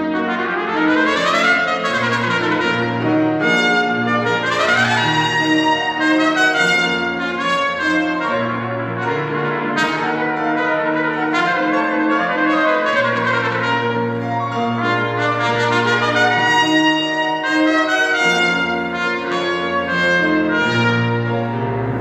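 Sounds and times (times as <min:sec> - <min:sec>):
grand piano accompaniment: 0:00.0 - 0:22.0
trumpet melody: 0:00.0 - 0:22.0.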